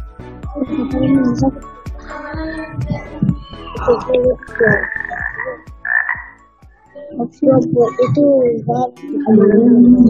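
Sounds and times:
background game music: 0:00.0 - 0:10.0
frog croaks: 0:03.8 - 0:07.2.

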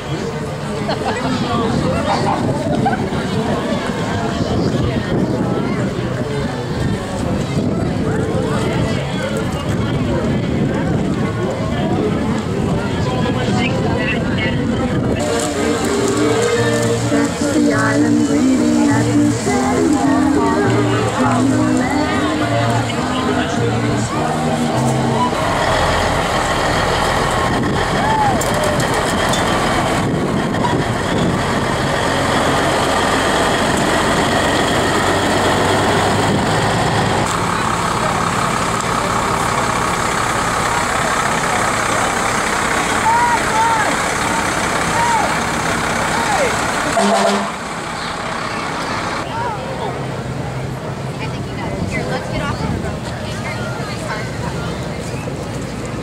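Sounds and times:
crowd chatter: 0:00.0 - 0:56.0
fire engine diesel engine: 0:00.0 - 0:56.0.

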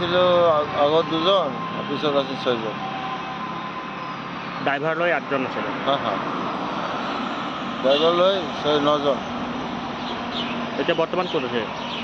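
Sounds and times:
road traffic drone: 0:00.0 - 0:12.0
man speaking: 0:04.7 - 0:06.3.

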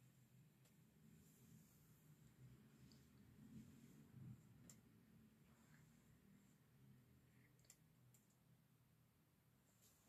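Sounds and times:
faint sharp clicks: 0:04.6 - 0:04.9, 0:07.4 - 0:08.6.

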